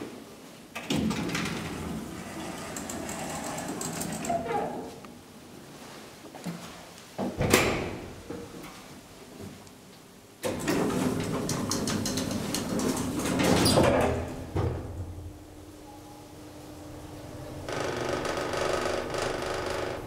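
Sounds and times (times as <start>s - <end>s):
elevator doors sliding shut: 10.4s - 14.5s.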